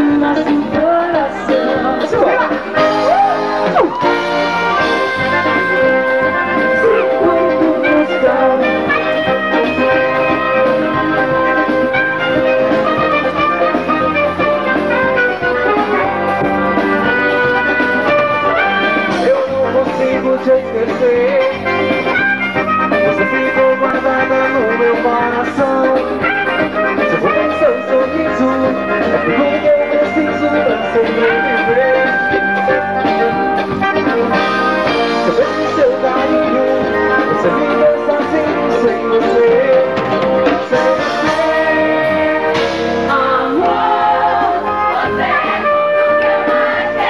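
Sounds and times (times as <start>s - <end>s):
person singing: 0.0s - 16.8s, 18.5s - 22.2s, 22.8s - 47.0s
live band with drums and horns: 0.0s - 47.0s
saxophone: 0.0s - 47.0s.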